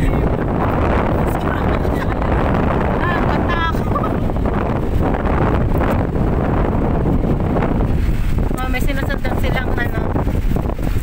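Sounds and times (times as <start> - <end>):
voices talking: 0.0 - 4.3
wind buffeting microphone: 0.0 - 11.0.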